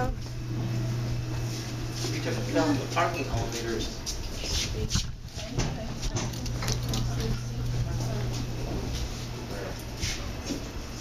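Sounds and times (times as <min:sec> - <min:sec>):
elevator low hum: 0:00.0 - 0:11.0
faint voices: 0:02.1 - 0:10.7.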